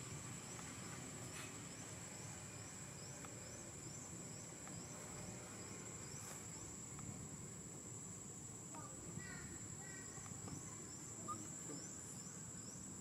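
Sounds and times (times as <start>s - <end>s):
high-pitched insect whine: 0.0s - 13.0s.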